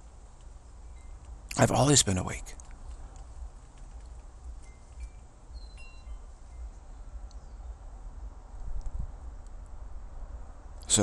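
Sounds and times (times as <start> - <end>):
low steady rumble: 0.0 - 11.0
faint chimes ringing: 0.7 - 2.5, 4.5 - 7.6.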